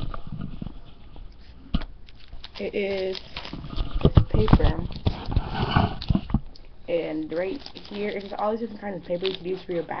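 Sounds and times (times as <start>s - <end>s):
cellophane rustle: 0.0s - 10.0s.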